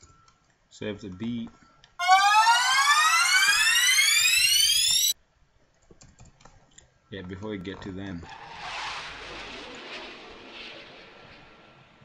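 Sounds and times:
rising synth sweep: 2.0s - 5.2s.

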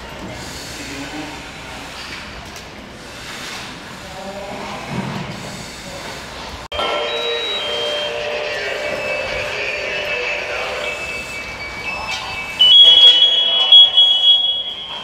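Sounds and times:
shrill alarm tone: 6.7s - 15.0s
thin high whining tones: 6.8s - 15.0s.

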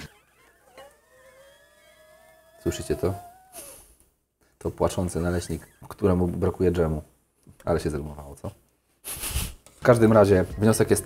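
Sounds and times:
pancake squealing on hot plate: 0.0s - 4.0s, 5.0s - 6.3s.

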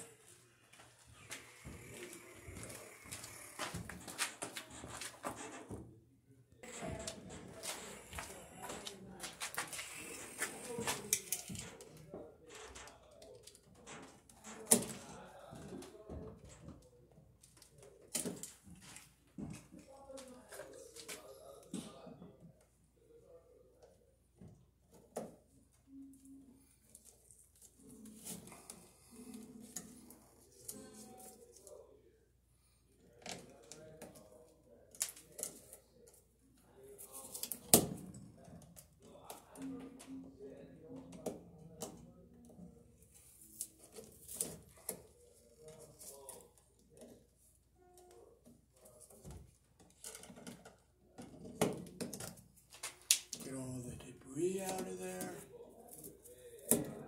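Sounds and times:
low voice: 53.4s - 55.6s.

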